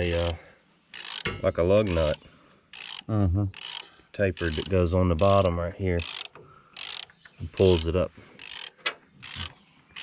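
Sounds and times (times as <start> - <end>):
ratchet wrench clicking: 0.0 - 10.0.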